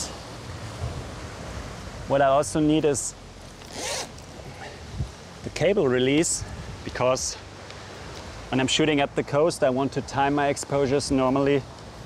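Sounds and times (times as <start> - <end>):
backpack zipper pulled open: 3.6 - 4.3.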